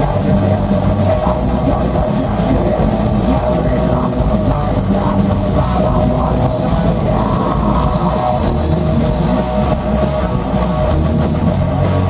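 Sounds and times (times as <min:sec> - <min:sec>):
death metal band playing live: 0:00.0 - 0:12.0
electric guitars: 0:00.0 - 0:12.0.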